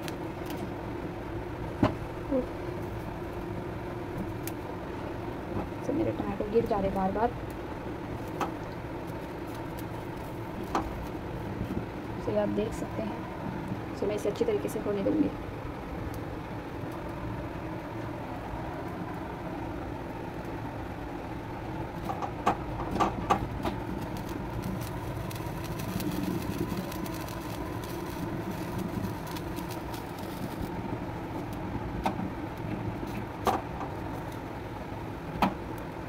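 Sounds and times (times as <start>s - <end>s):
gas burner flame: 0.0s - 36.0s.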